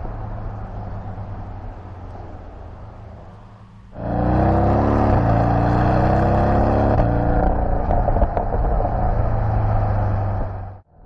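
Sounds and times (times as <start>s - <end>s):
car engine accelerating hard: 0.0s - 10.8s.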